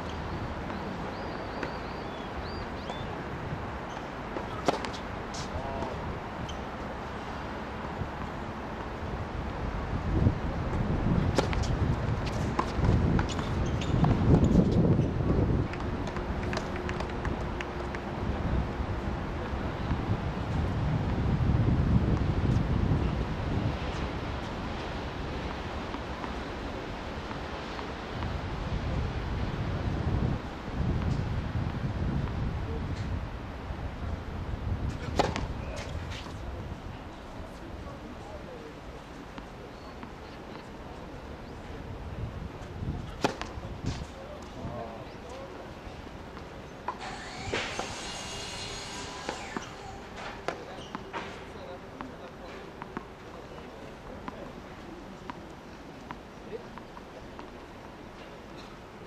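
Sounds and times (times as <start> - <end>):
wind buffeting microphone: 9.0 - 38.4, 41.4 - 45.2
tennis ball knocks: 34.9 - 36.2, 43.1 - 44.1.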